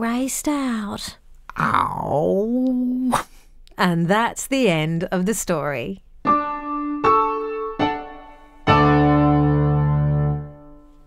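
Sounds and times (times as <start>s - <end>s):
piano notes and chord: 6.2s - 11.0s.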